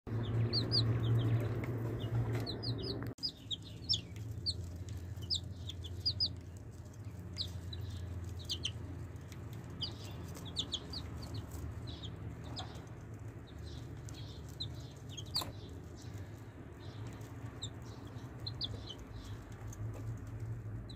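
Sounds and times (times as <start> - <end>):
baby chicks peeping: 0.1 - 20.9.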